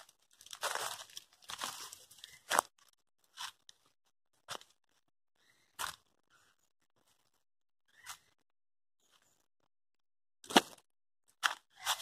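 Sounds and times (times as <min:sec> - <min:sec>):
footsteps crunching on dry leaves: 0:00.0 - 0:02.7.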